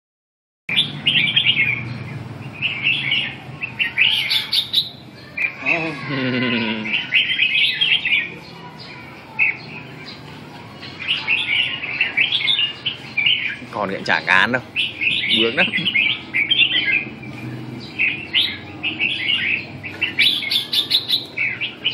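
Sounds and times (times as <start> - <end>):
birds chirping and singing: 0.7 - 21.9.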